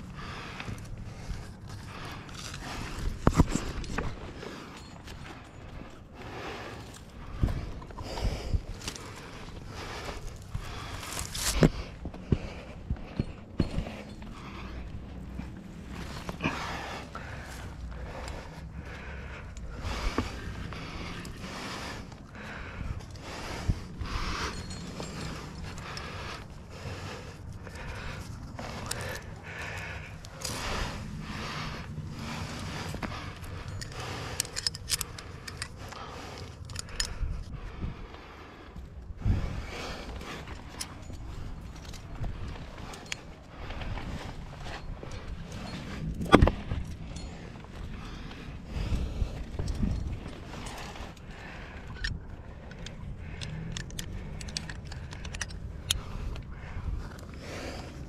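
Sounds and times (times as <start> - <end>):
climbing gear clinking: 0.0 - 58.0.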